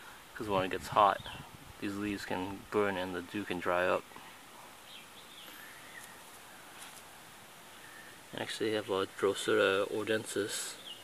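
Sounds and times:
faint background hiss: 0.0s - 11.0s
distant bird chirps: 4.8s - 6.8s, 10.7s - 11.0s.

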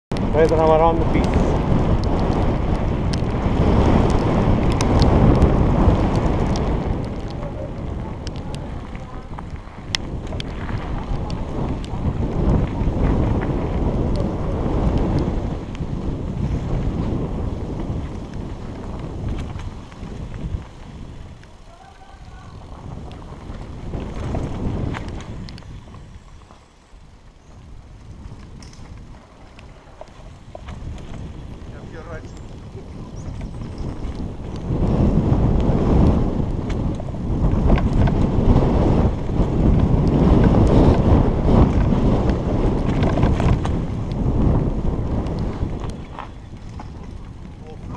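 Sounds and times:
bicycle tyre noise: 0.1s - 47.9s
wind rushing over microphone: 0.1s - 47.9s.

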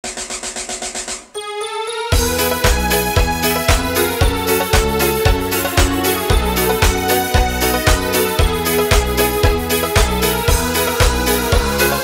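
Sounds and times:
rapid drum roll: 0.0s - 1.3s, 2.2s - 12.0s
held keyboard notes stepping upward: 1.8s - 12.0s.

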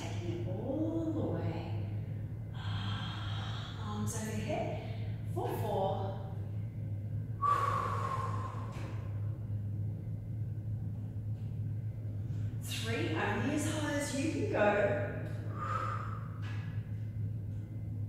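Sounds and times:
steady low hum: 0.0s - 18.0s
woman breathing with effort: 2.5s - 3.9s, 7.4s - 9.4s, 15.4s - 17.0s.

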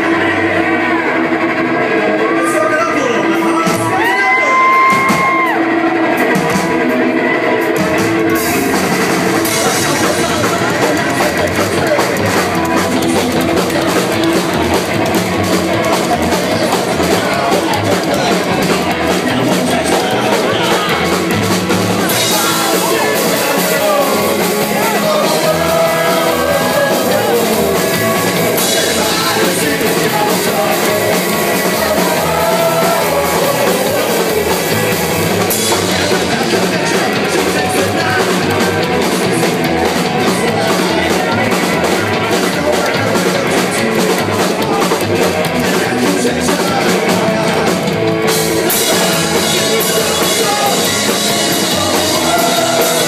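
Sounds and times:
electric guitar: 0.0s - 53.0s
live rock band: 0.0s - 53.0s
drum kit and cymbals: 7.6s - 53.0s
singer with long held notes: 22.1s - 38.8s.

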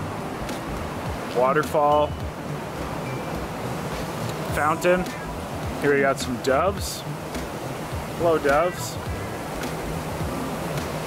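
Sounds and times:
waterfall spilling into pool: 4.2s - 11.0s.

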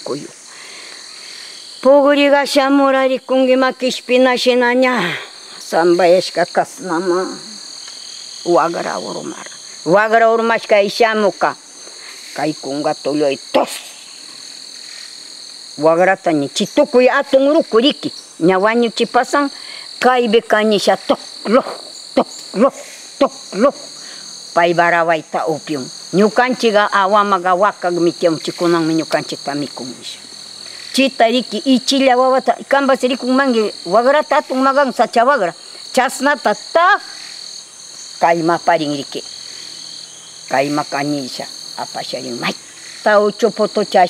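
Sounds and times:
woman talking: 0.0s - 0.4s, 1.8s - 7.6s, 8.5s - 11.6s, 12.3s - 14.0s, 15.8s - 23.9s, 24.5s - 30.3s, 30.9s - 37.2s, 38.2s - 39.3s, 40.5s - 44.0s
high-pitched insect drone: 0.0s - 44.0s.

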